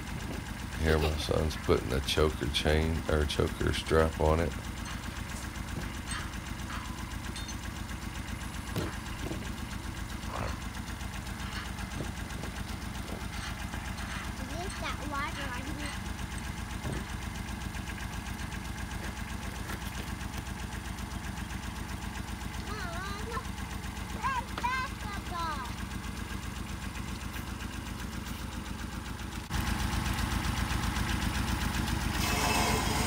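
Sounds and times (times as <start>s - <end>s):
tractor engine idling: 0.0s - 33.0s.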